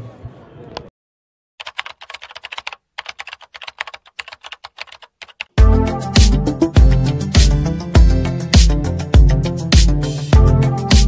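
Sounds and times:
keyboard typing clicks: 1.6 - 5.6
music with heavy bass beat: 5.6 - 11.0.

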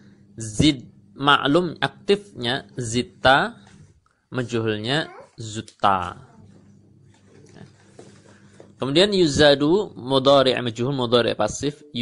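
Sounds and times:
low steady hum: 0.0 - 12.0
man speaking: 0.4 - 3.7, 4.3 - 6.4, 8.8 - 12.0.

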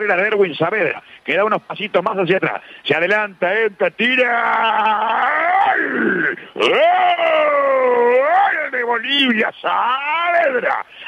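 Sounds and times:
radio commentator's long goal cry: 4.0 - 11.0.

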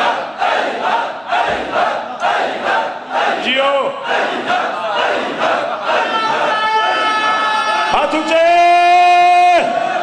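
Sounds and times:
crowd of men shouting in unison: 0.0 - 8.3.

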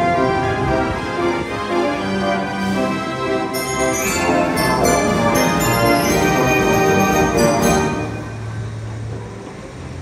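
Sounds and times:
carousel machinery humming: 0.0 - 10.0.

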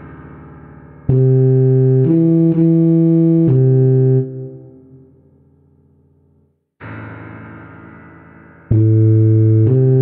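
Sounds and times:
tuba notes: 1.1 - 5.0, 8.7 - 10.0.

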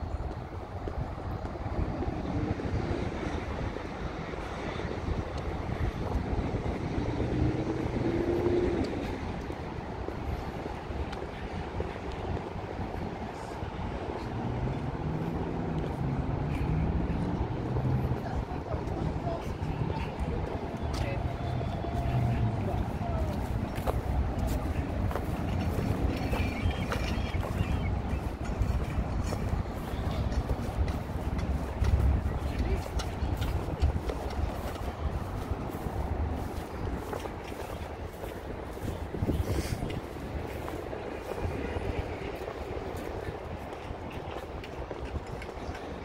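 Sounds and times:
faint voices: 0.0 - 46.0
traffic rumble: 0.0 - 46.0
passing engine drone: 6.7 - 9.4.

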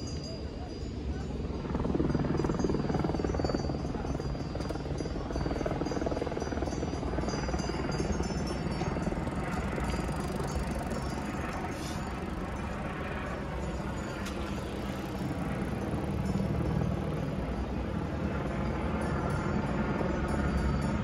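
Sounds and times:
pulsing engine drone: 0.0 - 21.0.

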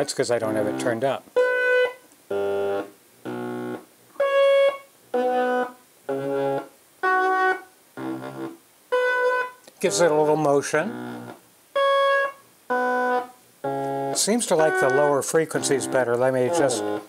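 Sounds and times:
synthesizer playing short notes: 11.8 - 17.0.

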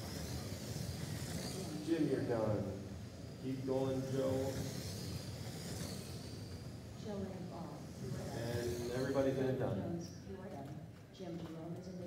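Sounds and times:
rc car motor whine: 0.0 - 10.2.

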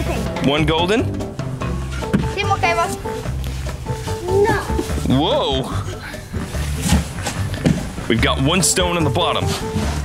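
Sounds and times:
background music: 0.0 - 10.0
cardboard boxes knocking: 6.7 - 8.0.

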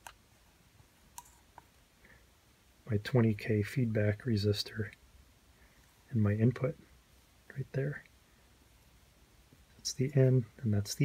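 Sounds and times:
man speaking: 2.8 - 5.0, 6.1 - 6.9, 7.5 - 8.1, 9.8 - 11.0.

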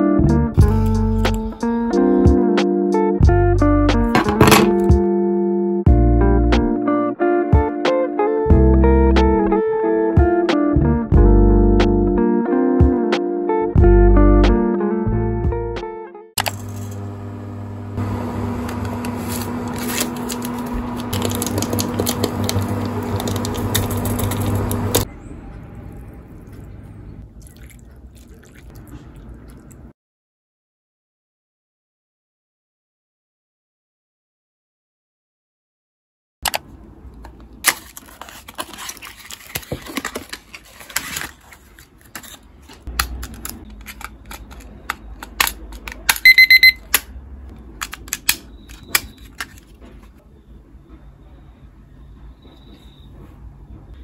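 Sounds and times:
broth being ladled: 25.9 - 29.9
timer high beeps: 46.2 - 46.8.

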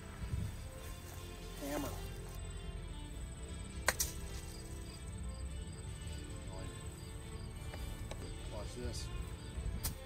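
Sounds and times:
golf club striking ball: 3.8 - 4.3.

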